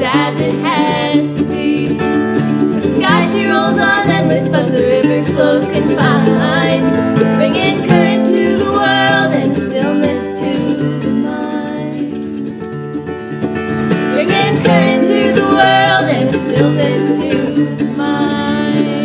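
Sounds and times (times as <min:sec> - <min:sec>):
women singing: 0:00.0 - 0:12.5, 0:14.1 - 0:19.0
acoustic guitar: 0:00.0 - 0:19.0
mandolin: 0:00.0 - 0:19.0.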